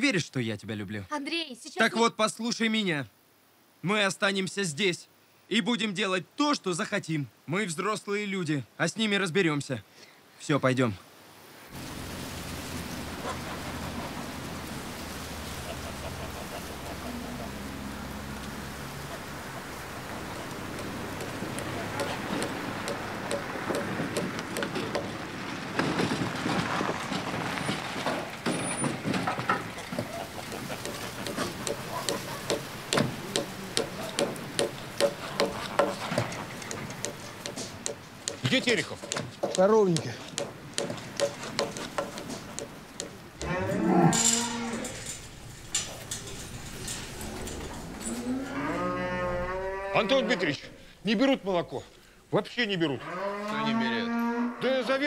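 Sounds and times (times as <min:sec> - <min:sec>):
truck engine running: 0:11.8 - 0:26.4
hammer blows on timber: 0:20.7 - 0:25.2, 0:30.0 - 0:43.2.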